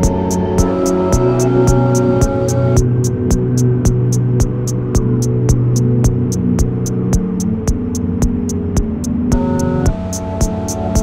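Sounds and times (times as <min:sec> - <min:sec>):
low synthesizer drone: 0:00.0 - 0:11.0.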